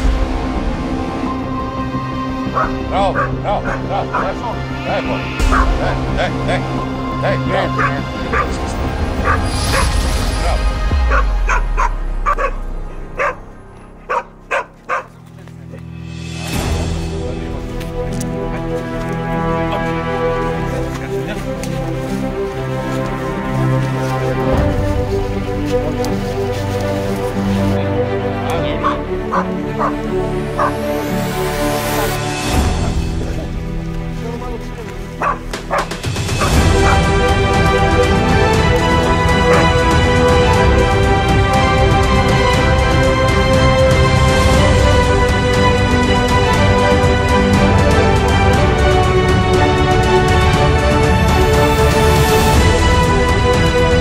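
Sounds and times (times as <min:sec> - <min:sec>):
background music: 0:00.0 - 0:54.0
dog yelping and barking: 0:02.6 - 0:04.3, 0:11.1 - 0:12.6, 0:13.2 - 0:13.4, 0:14.1 - 0:15.1, 0:35.2 - 0:35.9.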